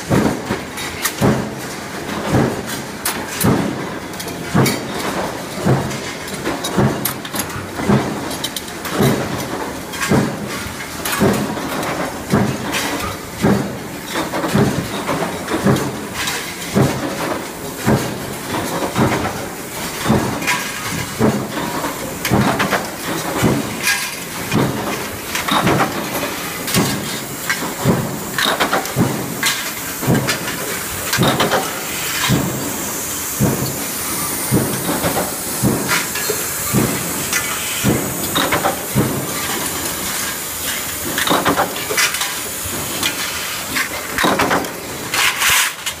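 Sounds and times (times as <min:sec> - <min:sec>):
running machinery din: 0:17.2 - 0:44.7.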